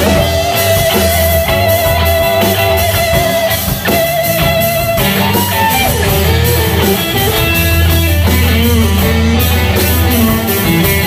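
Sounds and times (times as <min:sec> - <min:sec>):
drum kit beat: 0:00.0 - 0:11.0
electric guitars: 0:00.0 - 0:11.0.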